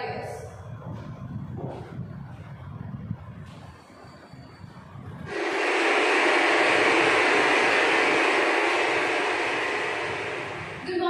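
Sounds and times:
loud rushing noise: 0:04.9 - 0:11.0.

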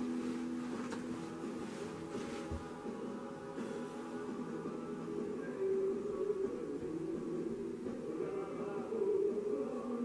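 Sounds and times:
music with long held notes: 0:00.0 - 0:10.0.

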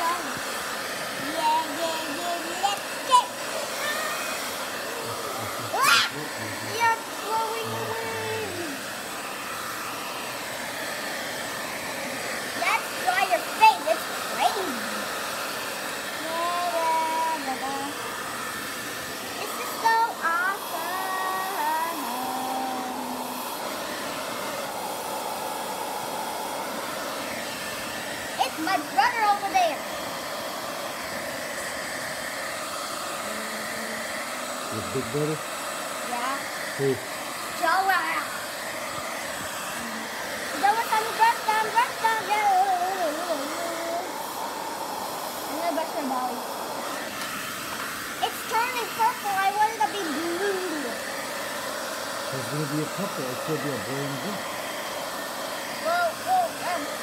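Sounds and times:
hair dryer running: 0:00.0 - 0:57.0
voices: 0:01.2 - 0:08.9, 0:12.2 - 0:15.1, 0:16.2 - 0:18.0, 0:19.4 - 0:23.4, 0:28.4 - 0:29.9, 0:33.2 - 0:35.4, 0:39.8 - 0:44.2, 0:45.5 - 0:46.5, 0:48.2 - 0:51.1, 0:52.4 - 0:54.4.

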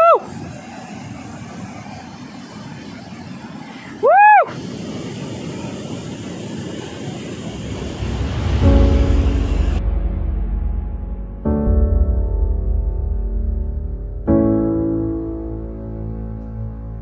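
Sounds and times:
loud high whoop: 0:00.0 - 0:00.4, 0:03.8 - 0:04.7
waterfall rushing over rocks: 0:00.0 - 0:09.8
background music: 0:08.0 - 0:17.0.

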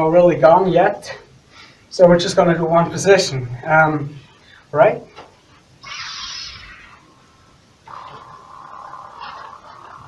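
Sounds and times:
steady electronic hum: 0:00.0 - 0:10.0
lightsaber swing hiss: 0:05.8 - 0:10.0.

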